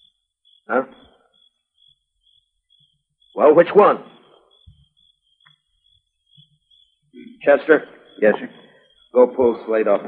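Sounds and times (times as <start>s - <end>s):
thin high-pitched whine: 0.0s - 10.0s
faint recording noise: 7.2s - 10.0s
person speaking: 7.2s - 10.0s.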